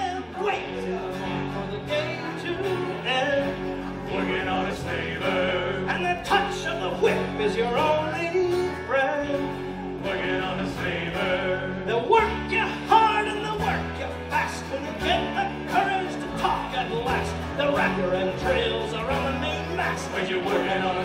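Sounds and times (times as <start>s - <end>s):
acoustic guitar: 0.0s - 21.0s
bass guitar: 0.0s - 21.0s
electric guitars: 0.0s - 21.0s.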